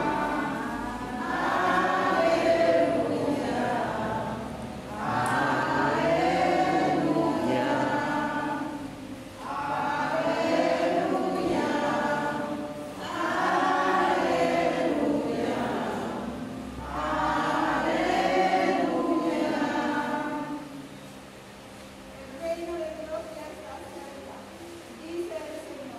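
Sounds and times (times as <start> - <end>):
congregation singing a hymn: 0.0 - 21.8.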